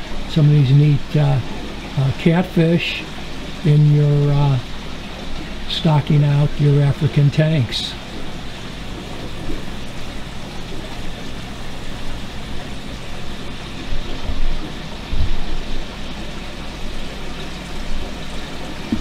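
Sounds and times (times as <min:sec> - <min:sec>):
aquarium water rushing: 0:00.0 - 0:19.0
low thumps: 0:13.9 - 0:15.8.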